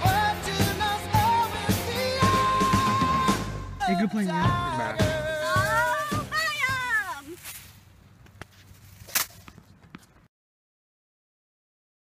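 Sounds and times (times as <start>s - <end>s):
backing song music: 0.0s - 7.2s.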